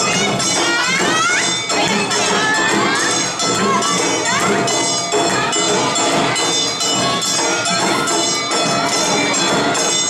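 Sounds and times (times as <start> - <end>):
children shouting and cheering: 0.0 - 10.0
crowd din: 0.0 - 10.0
ringing bells: 0.0 - 10.0.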